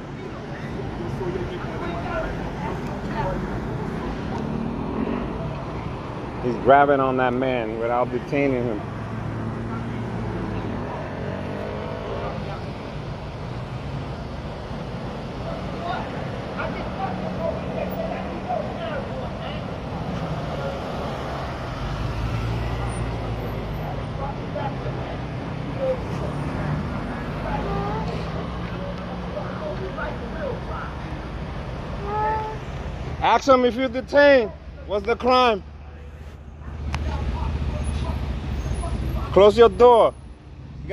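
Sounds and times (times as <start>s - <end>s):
street traffic noise: 0.0s - 40.9s.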